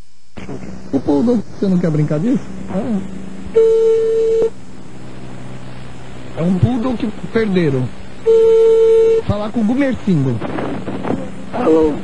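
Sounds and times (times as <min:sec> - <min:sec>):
faint line hum: 0:00.0 - 0:12.0
telephone ringback beep: 0:03.6 - 0:04.5, 0:08.3 - 0:09.2.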